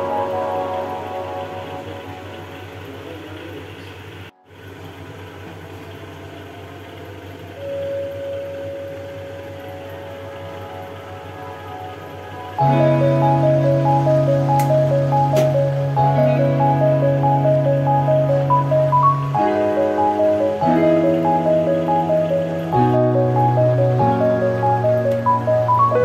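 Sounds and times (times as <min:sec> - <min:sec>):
background music: 0:00.0 - 0:03.1, 0:07.7 - 0:26.0
held musical note: 0:00.0 - 0:03.7, 0:07.6 - 0:26.0.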